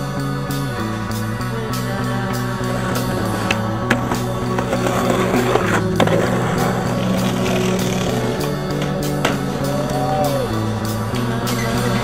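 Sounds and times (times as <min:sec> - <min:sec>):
guitar rock music: 0:00.0 - 0:12.0
skateboard wheels rolling on concrete: 0:00.0 - 0:12.0
skateboard clacks: 0:02.1 - 0:12.0.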